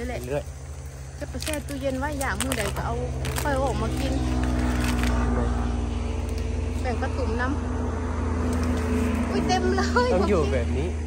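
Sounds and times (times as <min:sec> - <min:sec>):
palm fronds rustling: 0:00.0 - 0:07.1, 0:08.3 - 0:10.7
motor engine humming: 0:00.0 - 0:11.0.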